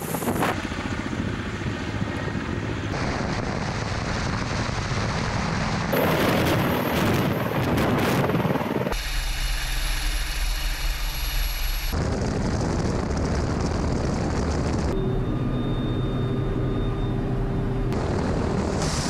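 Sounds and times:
helicopter rotor and turbine noise: 0.0s - 19.0s
high turbine whine: 0.0s - 19.0s.

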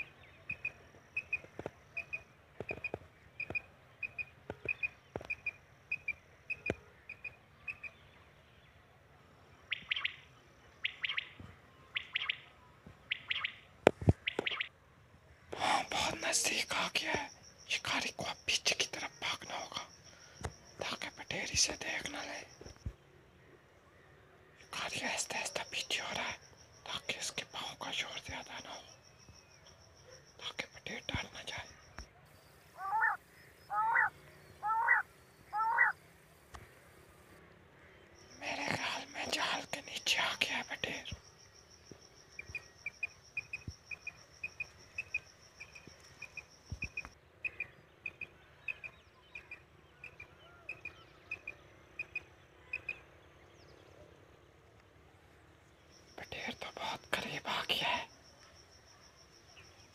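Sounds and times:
whispered talk: 15.6s - 19.9s, 30.4s - 31.8s, 38.4s - 41.2s, 56.2s - 58.1s
quail rising chirps: 32.6s - 36.0s
quail soft pips: 32.8s - 36.7s.

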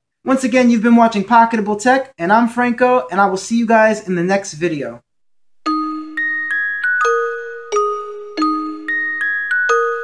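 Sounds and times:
bell-like mallet jingle: 5.7s - 10.0s.

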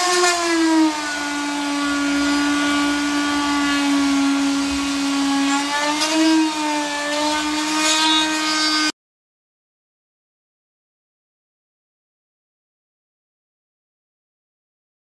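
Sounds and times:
power cutting tool humming: 0.0s - 9.0s.

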